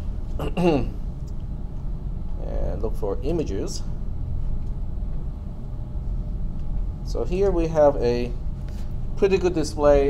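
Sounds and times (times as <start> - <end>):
faint steady hum: 0.0 - 10.0
low room rumble: 0.0 - 10.0.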